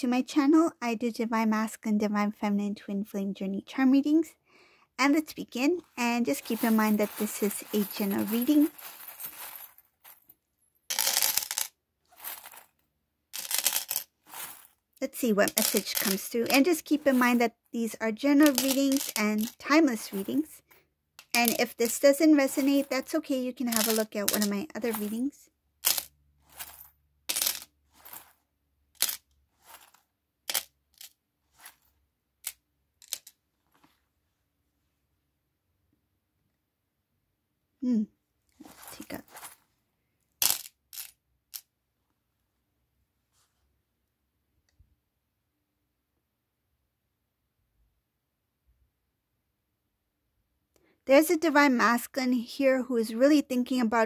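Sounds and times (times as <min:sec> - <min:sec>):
metal charms jingling: 0:06.3 - 0:10.2, 0:15.4 - 0:17.5, 0:18.4 - 0:20.5, 0:21.3 - 0:25.3.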